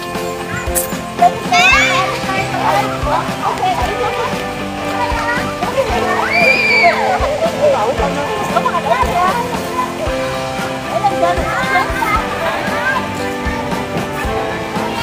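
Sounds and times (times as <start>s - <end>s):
background music: 0.0s - 15.0s
children shouting and chattering: 0.0s - 15.0s
child's high squeal: 6.2s - 7.1s.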